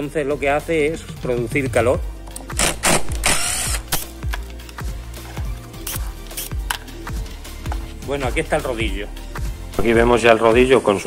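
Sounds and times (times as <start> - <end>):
background music with steady beat: 0.0 - 11.0
power drill running: 2.6 - 4.0.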